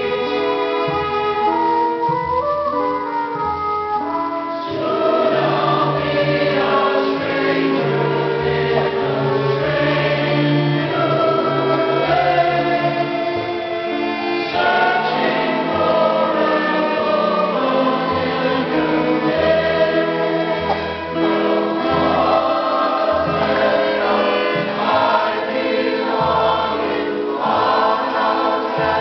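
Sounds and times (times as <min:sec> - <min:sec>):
instrumental accompaniment: 0:00.0 - 0:29.0
cast singing in chorus: 0:04.7 - 0:29.0.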